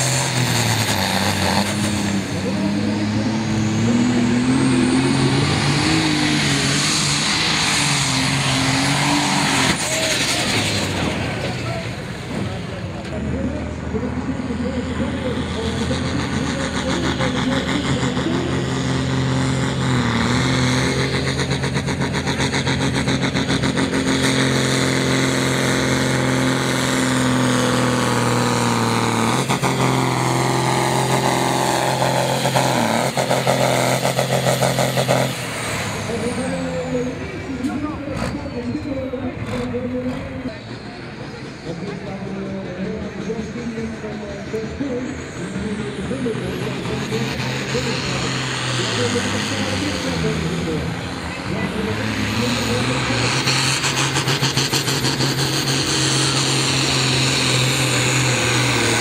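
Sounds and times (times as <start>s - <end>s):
tractor diesel engine at full load: 0.0s - 59.0s.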